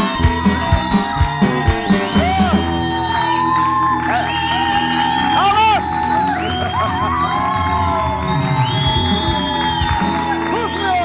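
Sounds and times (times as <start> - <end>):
audience cheering and whooping: 0.0 - 11.0
live band with guitars: 0.0 - 11.0.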